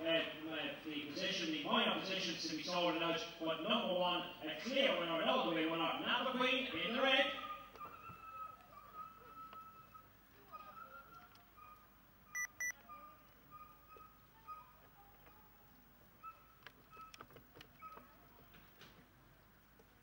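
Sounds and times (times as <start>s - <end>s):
short electronic beeps: 12.4s - 12.7s.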